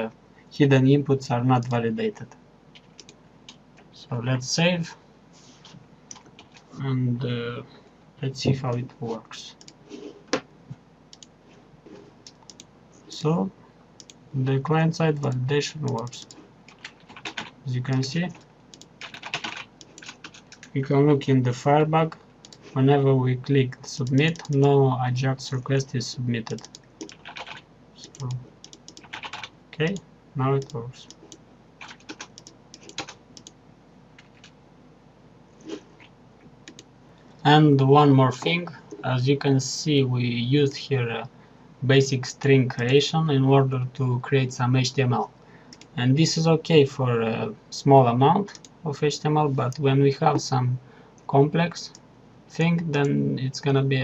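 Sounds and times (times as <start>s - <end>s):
computer mouse clicks: 1.6s - 3.6s, 9.6s - 10.5s, 11.1s - 11.4s, 12.2s - 12.7s, 14.0s - 14.2s, 15.2s - 20.8s, 22.4s - 22.7s, 24.0s - 24.7s, 26.4s - 29.5s, 30.6s - 33.6s, 35.6s - 36.9s, 45.7s - 46.0s, 48.5s - 48.8s
mouse clicks: 2.8s - 3.6s, 36.6s - 36.9s
keyboard keystrokes: 26.4s - 29.5s.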